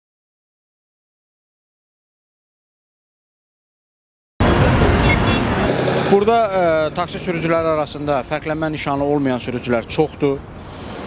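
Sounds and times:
car traffic passing: 4.4 - 11.0.

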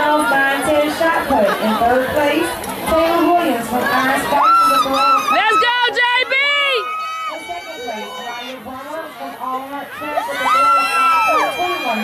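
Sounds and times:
spectators cheering and shouting: 0.0 - 12.0.

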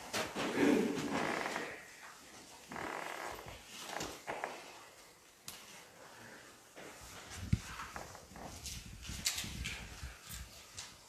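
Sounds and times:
footsteps on a floor: 0.0 - 11.0
light shuffling: 3.6 - 11.0.

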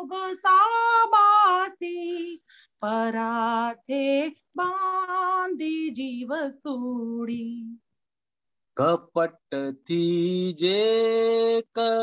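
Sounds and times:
woman singing unaccompanied: 0.0 - 7.8.

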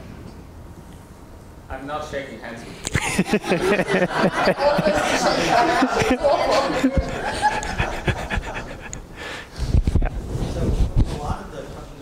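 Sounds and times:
indistinct talking: 3.0 - 9.6
breathy noise: 6.5 - 10.0.

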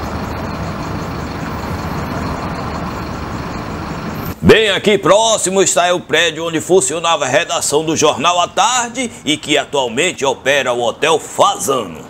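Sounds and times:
heavy vehicle engine drone: 0.0 - 12.0.

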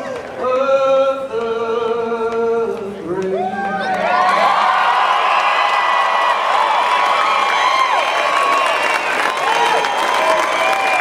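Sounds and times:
crowd clapping: 3.2 - 11.0
crowd cheering and whooping: 3.3 - 11.0.

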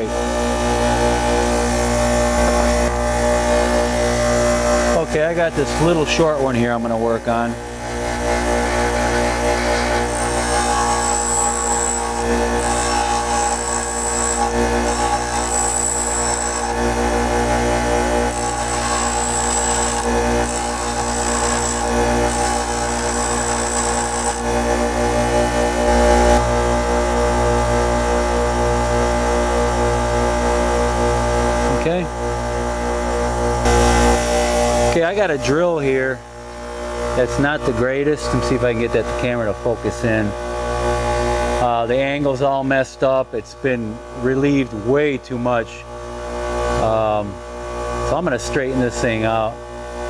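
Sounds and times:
bench grinder motor running: 0.0 - 27.8
drill bit grinding on wheel: 5.6 - 26.4.

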